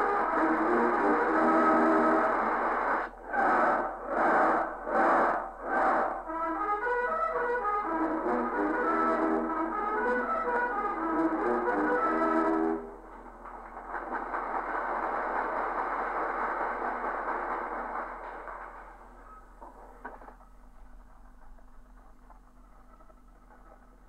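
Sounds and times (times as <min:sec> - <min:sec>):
radio recording hiss and crackle: 0:00.0 - 0:06.3, 0:07.6 - 0:24.0
brass fanfare: 0:00.0 - 0:13.3
audience applause: 0:13.4 - 0:19.0.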